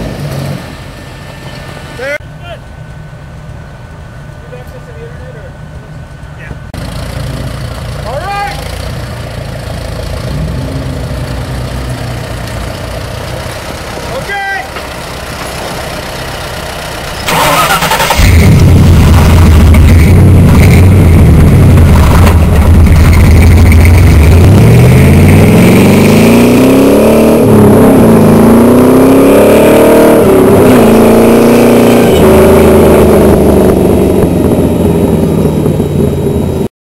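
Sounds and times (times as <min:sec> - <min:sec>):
off-road engine revving hard: 0:06.8 - 0:13.3, 0:17.1 - 0:36.7.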